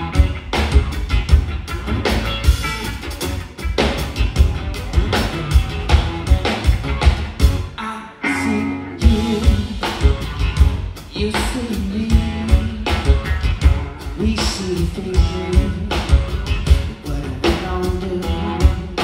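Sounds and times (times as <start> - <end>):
electric guitar: 0.0 - 19.0.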